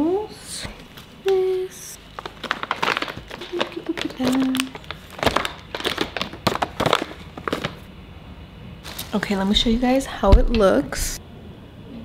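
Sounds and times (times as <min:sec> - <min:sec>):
packaging crinkling and rustling: 0:00.7 - 0:07.9, 0:08.8 - 0:09.8.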